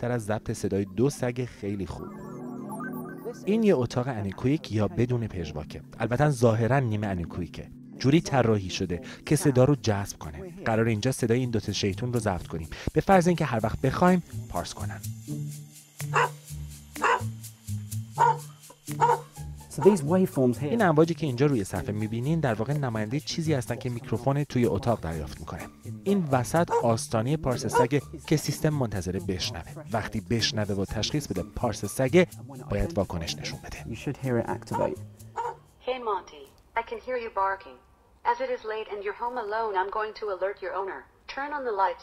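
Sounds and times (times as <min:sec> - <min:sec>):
background music: 0:00.0 - 0:36.6
dogs barking: 0:16.0 - 0:16.4, 0:17.0 - 0:17.4, 0:18.2 - 0:20.1, 0:26.5 - 0:28.0, 0:34.5 - 0:35.6.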